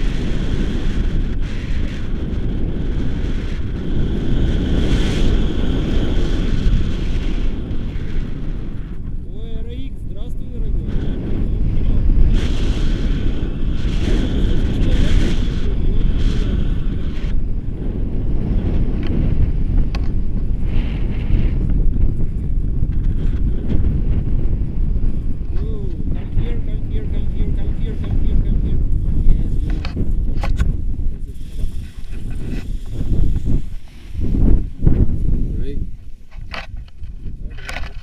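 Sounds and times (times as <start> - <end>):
strong wind buffeting microphone: 0.0 - 38.0
person speaking: 25.5 - 29.8.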